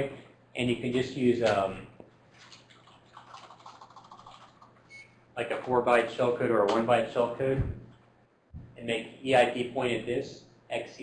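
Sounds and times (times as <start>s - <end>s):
typing on keyboard: 2.6s - 4.8s.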